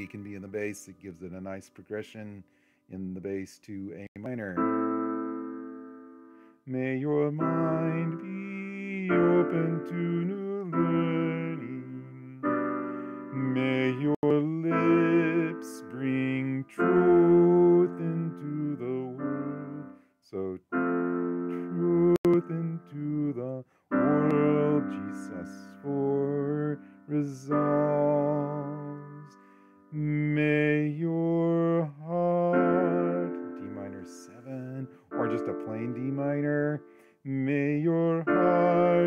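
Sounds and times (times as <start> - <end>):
keyboard piano chords: 0.0 - 2.0, 3.9 - 39.0
man singing a hymn: 0.0 - 4.6, 6.6 - 20.6, 21.5 - 39.0.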